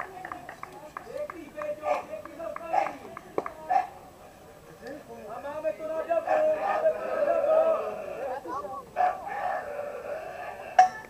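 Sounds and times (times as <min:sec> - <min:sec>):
players calling out: 0:00.0 - 0:11.0.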